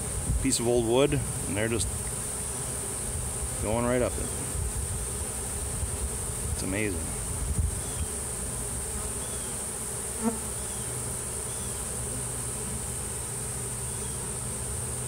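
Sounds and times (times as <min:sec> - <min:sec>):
bee swarm humming: 0:00.0 - 0:15.0.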